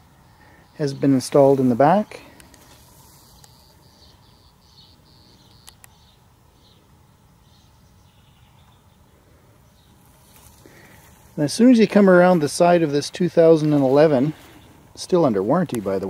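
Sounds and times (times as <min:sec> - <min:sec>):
faint high chirping calls: 0:00.0 - 0:11.0.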